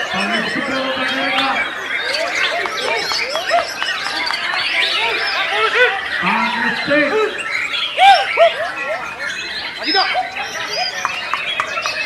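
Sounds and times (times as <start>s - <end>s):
birds singing whistled notes: 0.0s - 12.0s.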